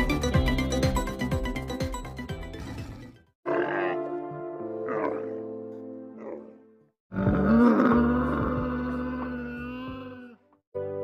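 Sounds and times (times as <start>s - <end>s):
camel groaning bellow: 2.9s - 4.2s, 4.8s - 5.4s, 6.2s - 10.4s.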